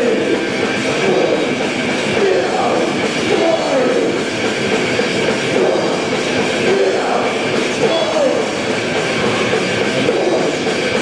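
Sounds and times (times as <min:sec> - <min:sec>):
metal band playing live: 0:00.0 - 0:11.0.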